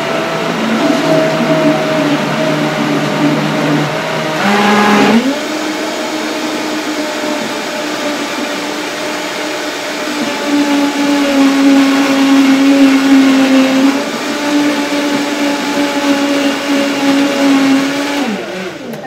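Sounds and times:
blender motor whining: 0.0 - 19.0.

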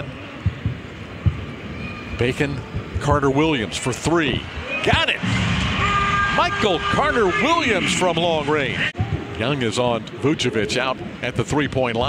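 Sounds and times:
faint arena background: 0.0 - 12.0.

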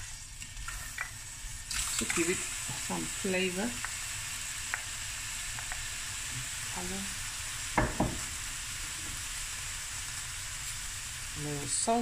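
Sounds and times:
prawns sizzling in a frying pan: 0.0 - 12.0.

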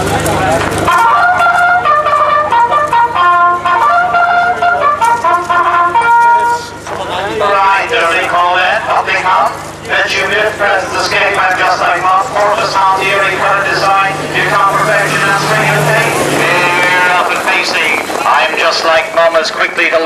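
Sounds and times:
low steady hum: 0.0 - 20.0
race commentator speaking: 4.4 - 20.0.

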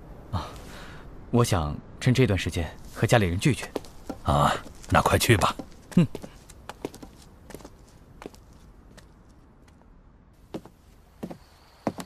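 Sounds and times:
faint footsteps: 2.8 - 12.0.

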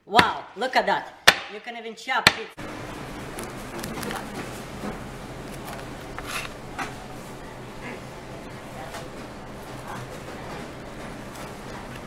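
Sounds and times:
low background hum: 2.3 - 12.0
pizza cutter crunching crust: 5.6 - 6.6.

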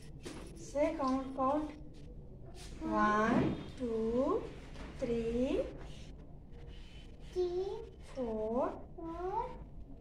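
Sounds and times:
child making sing-song sounds: 7.4 - 7.8.

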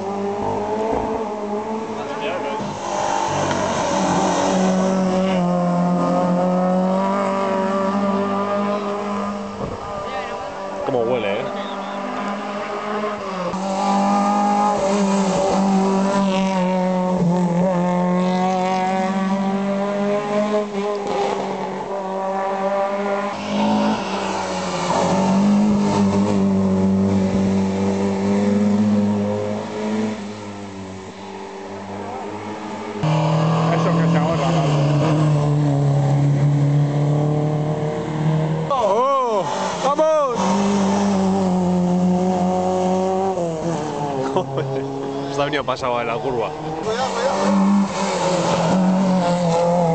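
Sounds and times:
car engine revving hard: 0.0 - 49.9.

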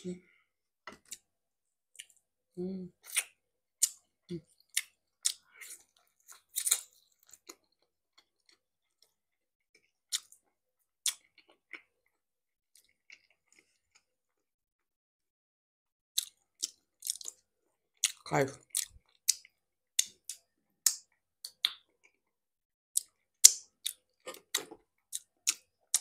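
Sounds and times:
wet chewing and lip-smacking: 3.0 - 9.2, 9.8 - 14.1, 16.2 - 17.4, 18.0 - 22.3, 23.0 - 26.0.

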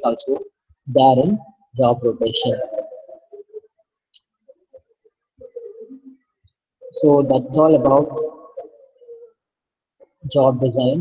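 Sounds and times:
bird cooing: 2.2 - 10.3.

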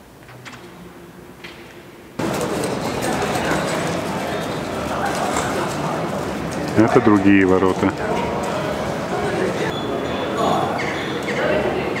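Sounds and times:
many people talking: 2.2 - 12.0.

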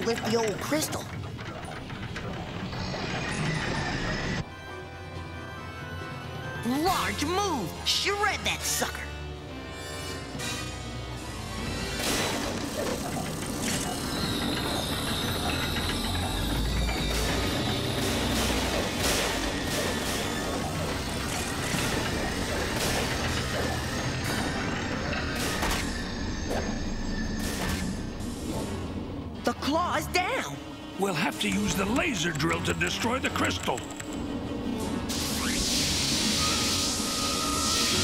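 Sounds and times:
mechanical clanking: 0.0 - 4.4, 11.8 - 29.3
dramatic background music: 0.0 - 38.0.

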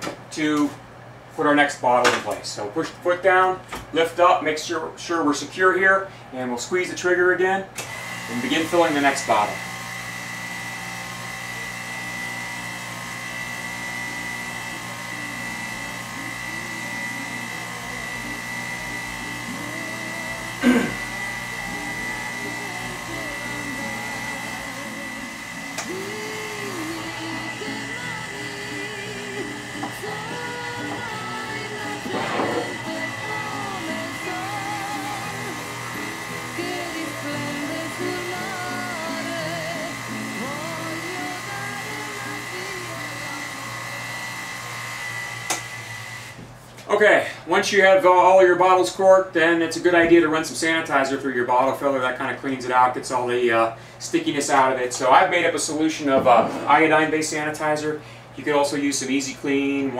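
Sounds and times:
electric pump whining: 7.8 - 46.5.

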